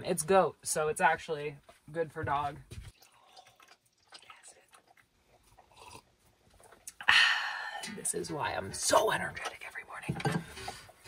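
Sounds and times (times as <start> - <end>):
soft drinking mouth sounds: 2.9 - 7.9.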